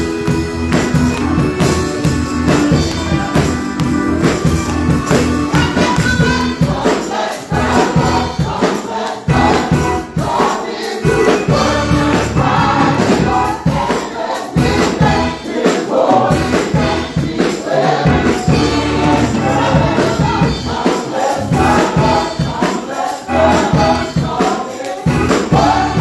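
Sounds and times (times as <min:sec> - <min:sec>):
gospel choir singing: 0:00.0 - 0:26.0
live music with steady beat: 0:00.0 - 0:26.0.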